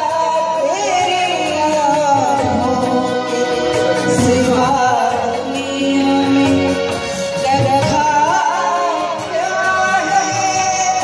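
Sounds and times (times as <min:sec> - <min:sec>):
electronic keyboard: 0:00.0 - 0:11.0
woman singing: 0:00.0 - 0:11.0.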